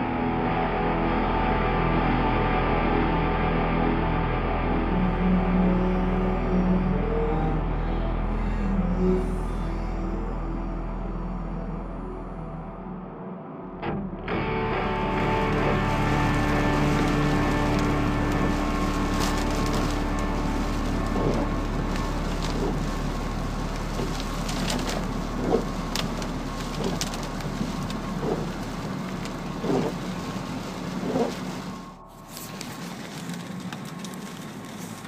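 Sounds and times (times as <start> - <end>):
rain on a moving car: 0.0 - 8.1, 14.4 - 35.0.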